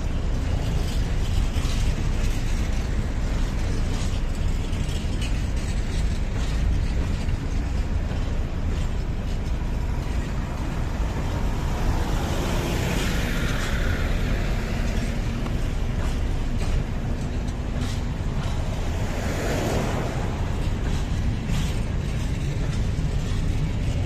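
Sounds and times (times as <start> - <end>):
train clicks and knocks: 0.0 - 24.0
train wheels rumbling on rails: 0.0 - 24.0
road vehicle passing: 6.6 - 24.0.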